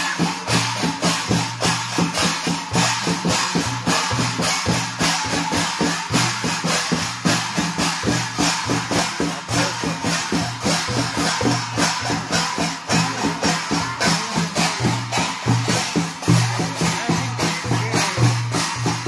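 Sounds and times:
hand drums dance rhythm: 0:00.0 - 0:19.0.

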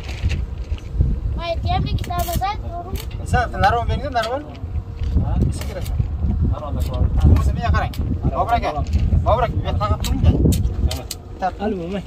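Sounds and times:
wind rumble on microphone: 0:00.0 - 0:12.0
men talking: 0:02.6 - 0:12.0.

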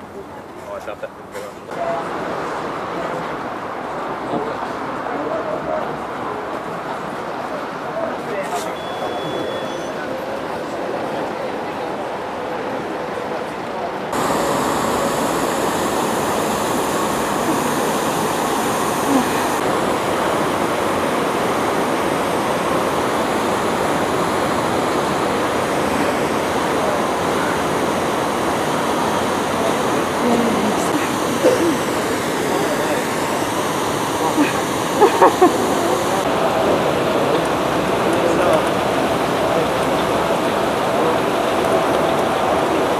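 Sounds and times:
murmured voices: 0:00.0 - 0:42.9
rushing like churning water: 0:18.5 - 0:42.9.

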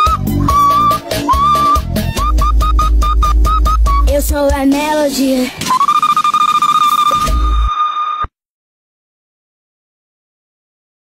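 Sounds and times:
girl singing falsetto note: 0:00.0 - 0:01.8, 0:03.9 - 0:05.0.

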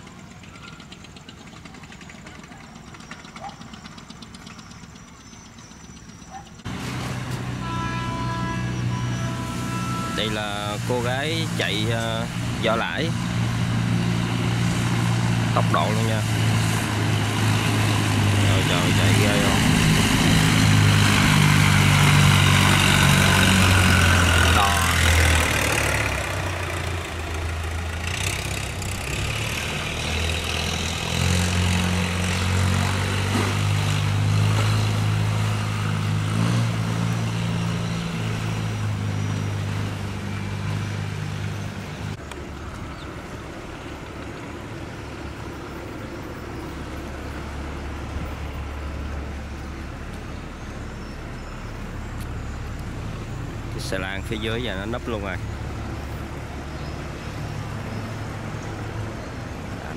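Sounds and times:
boat engine running fast: 0:00.0 - 0:36.0
barge engine drone: 0:00.0 - 0:59.9.

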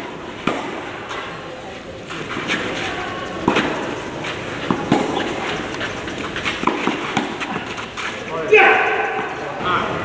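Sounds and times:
footsteps on clay court: 0:00.0 - 0:09.7.

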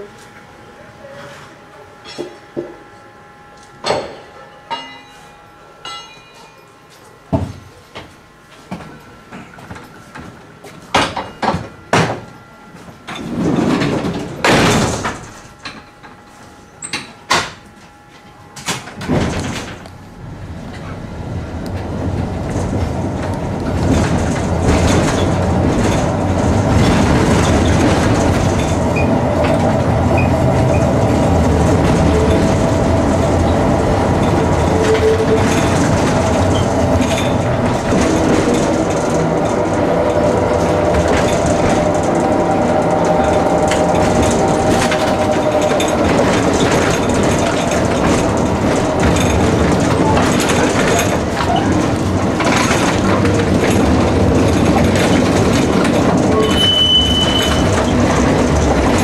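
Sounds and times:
steady high whine: 0:00.0 - 0:53.8
tram wheels running on track: 0:07.9 - 0:16.2, 0:18.6 - 0:59.0
knocks and rattles: 0:21.8 - 0:59.0.

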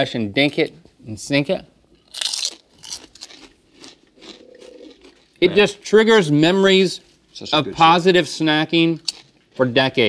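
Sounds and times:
person chewing crunchy snacks: 0:02.0 - 0:05.6, 0:09.0 - 0:09.5.

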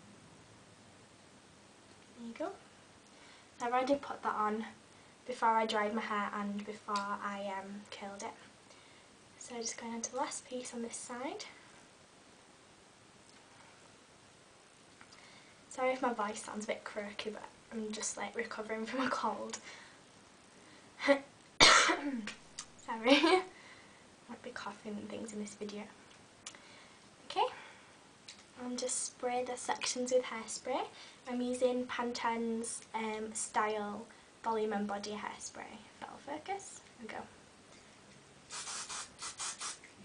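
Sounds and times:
woman clearing her throat: 0:21.6 - 0:22.2
woman coughing: 0:21.6 - 0:22.2
aerosol can spraying: 0:38.5 - 0:39.9.

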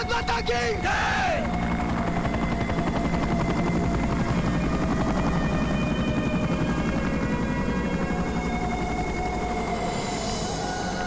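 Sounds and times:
helicopter rotor chopping: 0:00.0 - 0:08.0.

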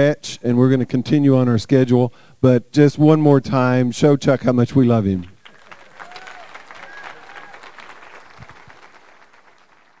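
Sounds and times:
audience applauding: 0:05.4 - 0:10.0.

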